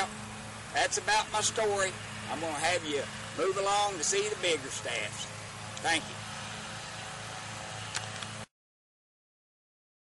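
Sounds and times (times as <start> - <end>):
steady low hum: 0.0 - 8.5.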